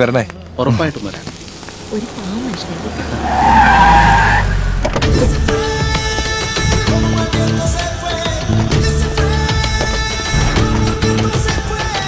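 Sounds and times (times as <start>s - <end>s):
engine rumble: 0.0s - 7.8s
tyre screech: 3.0s - 5.3s
music with sharp rhythmic hits: 4.9s - 12.0s.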